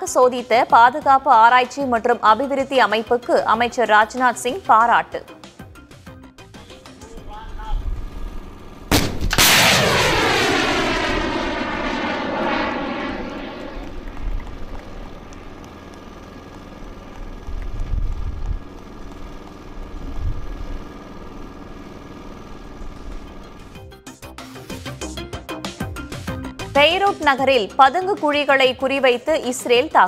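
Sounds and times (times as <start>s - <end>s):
rocket motor roaring: 7.2s - 23.8s
missile launch crack: 8.9s - 15.6s.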